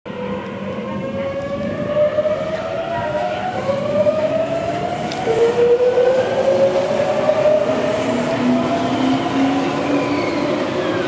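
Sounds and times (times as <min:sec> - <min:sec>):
train wheels rumbling: 0:00.1 - 0:11.0.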